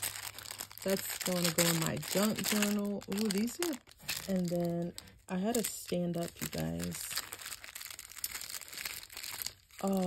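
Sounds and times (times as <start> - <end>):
cloth pouch rustling and crinkling: 0.0 - 10.0.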